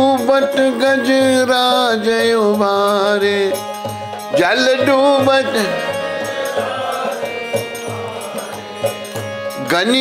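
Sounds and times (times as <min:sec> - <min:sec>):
harmonium chord: 0:00.0 - 0:10.0.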